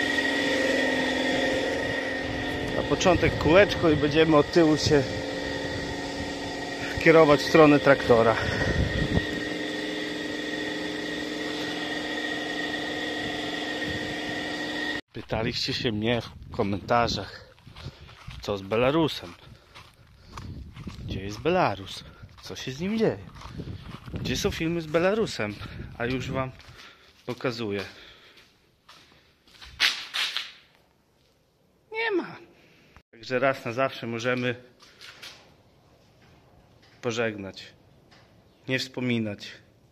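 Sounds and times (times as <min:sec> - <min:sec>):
machine humming with high whine: 0:00.0 - 0:15.0.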